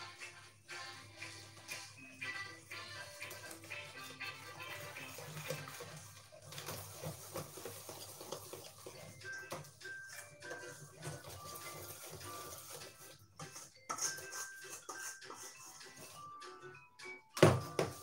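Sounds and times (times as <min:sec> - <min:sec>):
quiet background music: 0:00.0 - 0:18.0
utensil scraping metal bowl: 0:03.3 - 0:09.6, 0:10.5 - 0:16.2.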